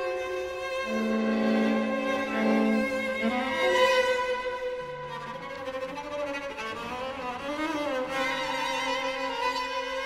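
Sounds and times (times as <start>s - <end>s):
string trio playing: 0.0s - 10.0s.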